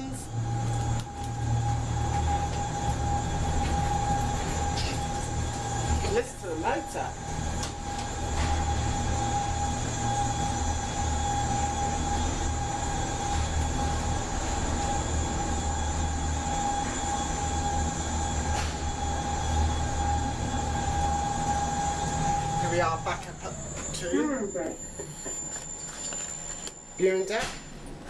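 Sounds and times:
lift motor low hum: 0.0 - 27.0
high whine: 0.0 - 28.0.

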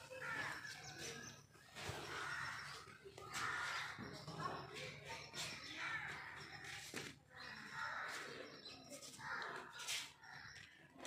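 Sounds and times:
birds harsh calls: 0.0 - 11.0.

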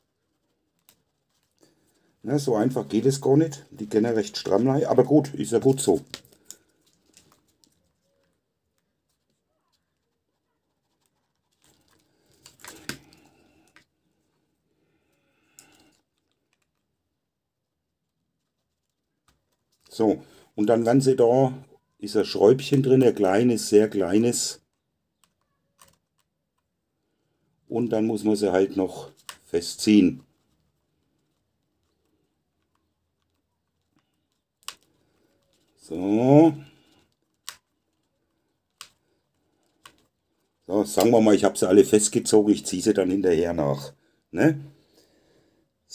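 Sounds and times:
handling rustle: 0.0 - 14.5, 17.6 - 21.0, 28.0 - 42.2.

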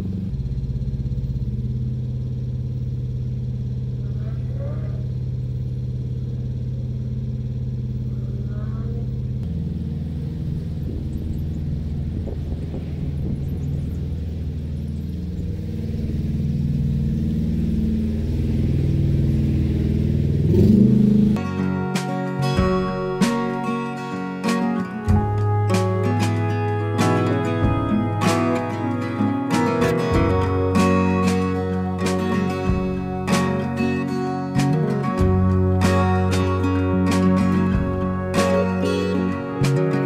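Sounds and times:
boat diesel engine running: 0.0 - 40.0.

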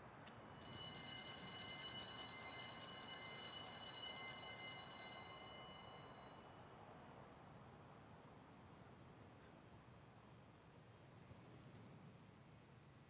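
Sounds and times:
small bells ringing: 0.2 - 6.5.

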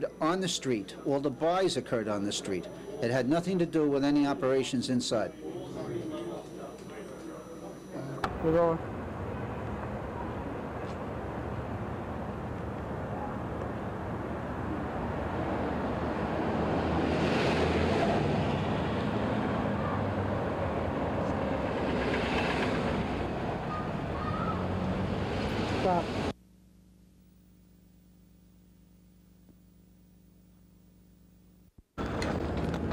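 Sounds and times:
passing vehicles rushing: 13.8 - 26.3.

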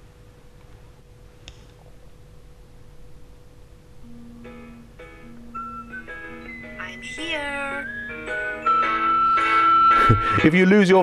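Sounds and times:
faint room hum: 0.0 - 11.0
smartphone melodic jingle: 4.1 - 10.6.

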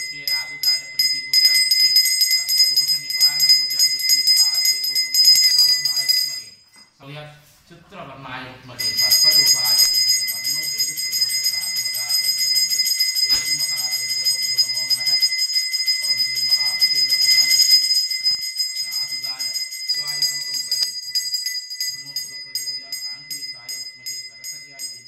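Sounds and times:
hand bell ringing: 0.0 - 7.0, 8.8 - 25.0.

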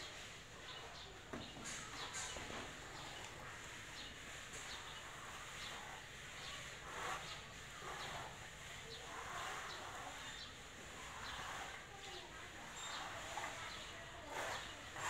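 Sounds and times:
plastering float scraping render: 0.0 - 15.0.

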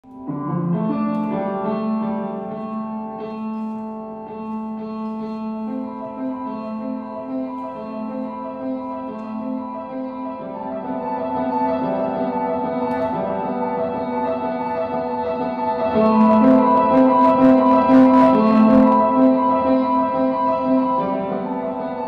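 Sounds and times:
slow solo piano music: 0.0 - 22.0.

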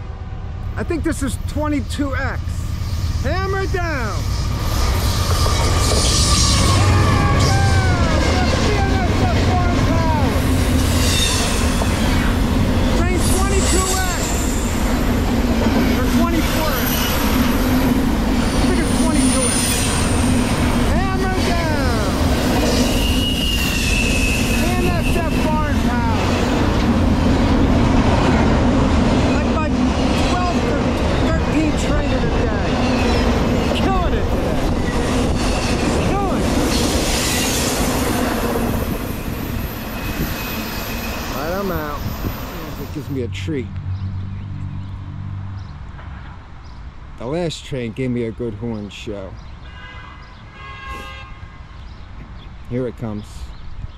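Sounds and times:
freight train wheels rumbling on rail: 0.0 - 43.3
high wheel squeals: 2.6 - 9.1, 10.3 - 15.2, 15.8 - 26.8, 36.6 - 43.1.

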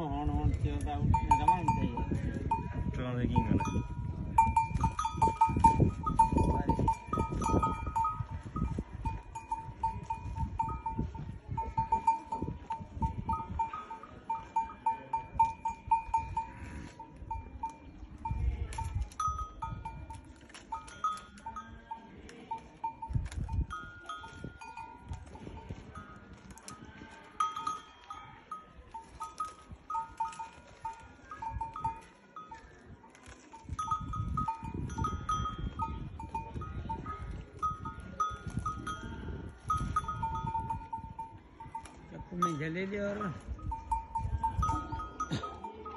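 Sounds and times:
metal neck bells clanking: 0.9 - 45.9.

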